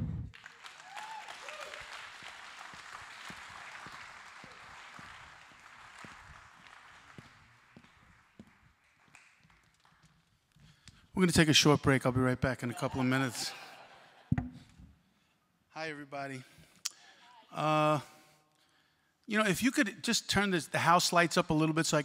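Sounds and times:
audience applauding: 0:00.0 - 0:10.1.

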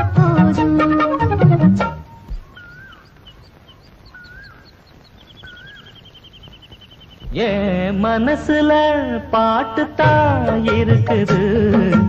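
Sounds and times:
birds chirping: 0:00.0 - 0:11.2
film song with reedy melody: 0:00.0 - 0:12.0
bird trilling: 0:02.0 - 0:07.9.

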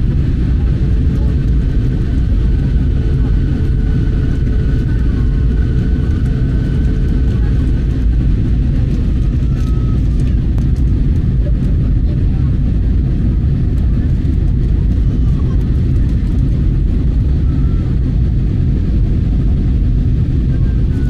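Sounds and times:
airliner cabin engine rumble: 0:00.0 - 0:21.0.

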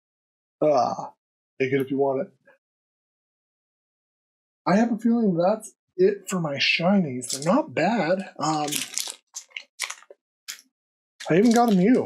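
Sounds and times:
foil wrapper crinkling: 0:08.1 - 0:10.6, 0:11.2 - 0:12.0.

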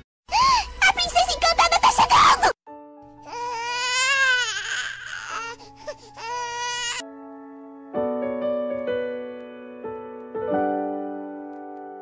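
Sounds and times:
newborn baby crying: 0:03.3 - 0:07.0.

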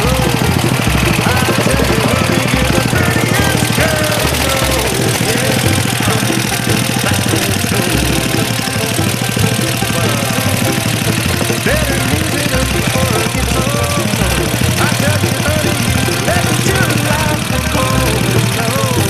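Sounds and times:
small engine running: 0:00.0 - 0:19.0.

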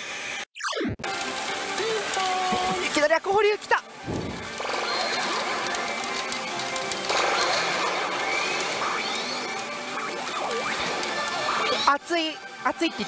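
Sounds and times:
din of a pachinko hall: 0:00.0 - 0:13.0
pachinko machine music and effects: 0:00.6 - 0:13.0.

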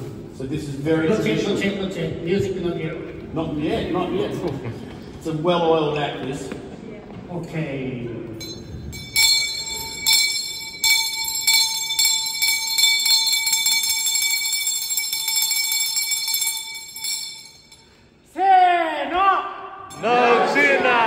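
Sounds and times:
metal bell ringing: 0:08.4 - 0:18.1.

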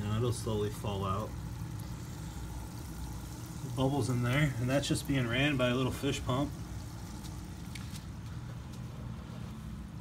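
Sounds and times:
aquarium air pump humming: 0:00.0 - 0:10.0.

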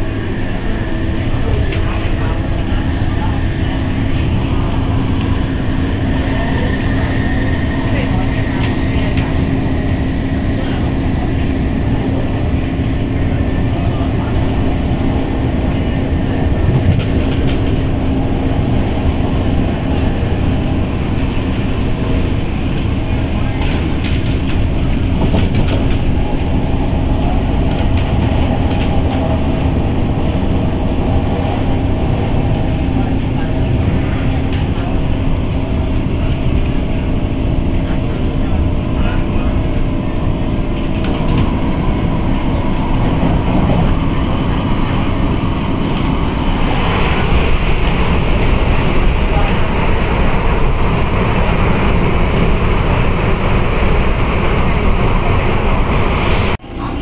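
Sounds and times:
metro train wheels on rail: 0:00.0 - 0:57.0
train motor hum: 0:00.0 - 0:57.0
train passing on adjacent track: 0:00.0 - 0:57.0.

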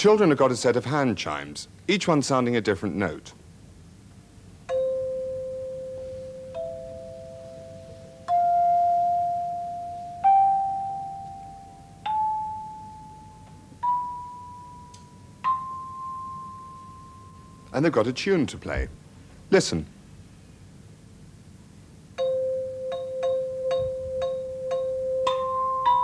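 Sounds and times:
hand chimes rising scale: 0:04.7 - 0:17.7.

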